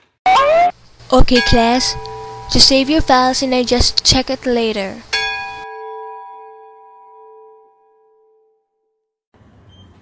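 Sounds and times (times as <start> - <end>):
bell-like chime ringing: 1.3 - 4.0, 5.1 - 8.7.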